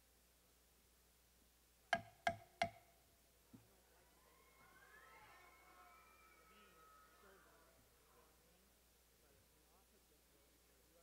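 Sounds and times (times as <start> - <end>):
faint wavering whistle-like tone: 4.0 - 8.3.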